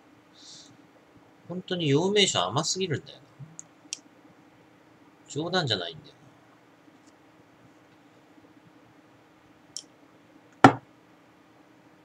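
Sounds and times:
man speaking: 0:01.5 - 0:03.6, 0:05.3 - 0:06.2.

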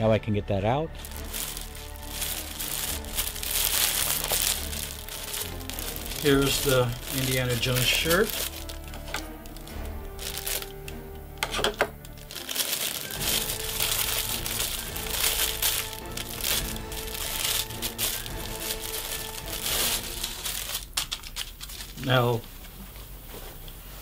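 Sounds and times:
music with held tones: 0:00.0 - 0:21.4
plastic bag crinkling: 0:01.0 - 0:22.4.

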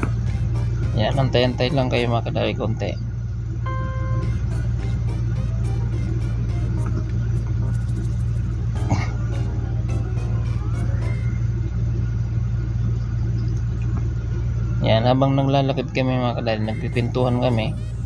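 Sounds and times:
background music: 0:00.0 - 0:02.4, 0:03.7 - 0:11.8
low engine rumble: 0:00.0 - 0:18.0.

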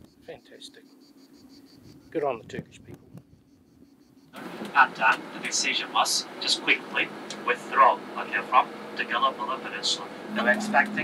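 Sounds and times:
minibus running inside cabin: 0:04.4 - 0:11.0.

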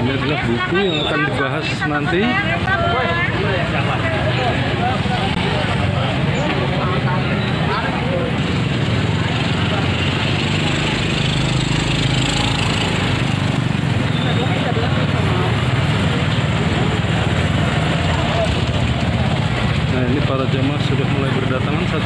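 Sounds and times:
motorbike engines running: 0:00.0 - 0:22.0
people talking: 0:00.0 - 0:22.0.

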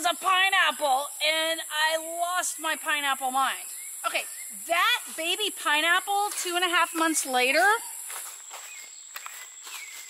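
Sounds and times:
insect trill: 0:00.0 - 0:10.0
footsteps in dry leaves: 0:06.1 - 0:10.0.

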